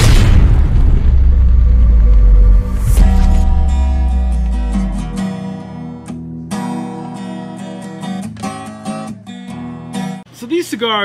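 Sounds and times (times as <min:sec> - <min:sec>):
explosion boom with deep rumble: 0:00.0 - 0:05.3.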